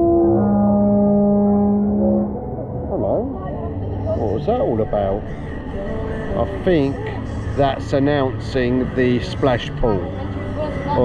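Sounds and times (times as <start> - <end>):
loud signal horn: 0.0 - 2.6.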